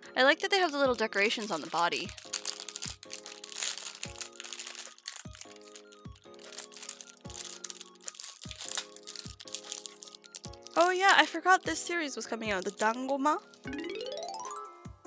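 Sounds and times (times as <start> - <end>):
background music with steady beat: 0.0 - 15.0
plastic bag crinkling and tearing: 0.4 - 11.5, 12.3 - 13.7.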